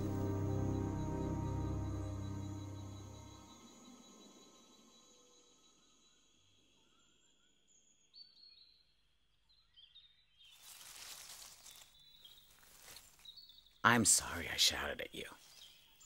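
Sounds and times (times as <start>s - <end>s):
soft bird chirps: 0.0s - 16.0s.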